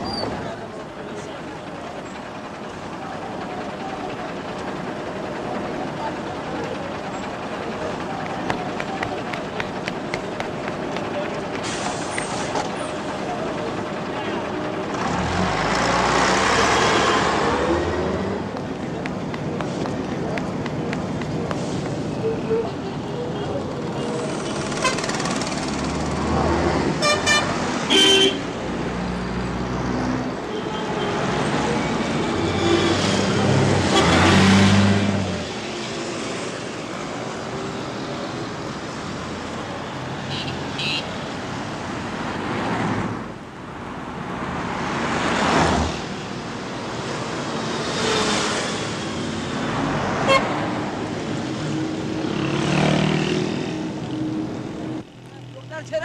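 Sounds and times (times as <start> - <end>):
passing vehicle engines: 5.4 - 56.0
car horns tooting: 27.0 - 28.5, 50.3 - 50.6.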